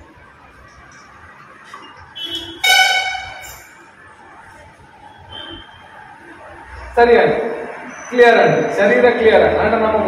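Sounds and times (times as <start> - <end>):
horn honking: 2.2 - 3.8.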